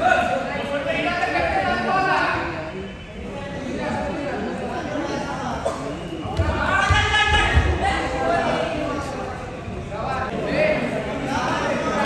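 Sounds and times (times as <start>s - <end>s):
onlookers' voices in a hall: 0.0s - 12.0s.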